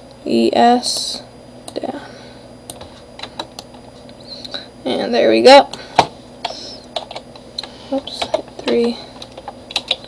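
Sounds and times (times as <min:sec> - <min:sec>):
computer keyboard keys clicking: 0:06.4 - 0:10.0.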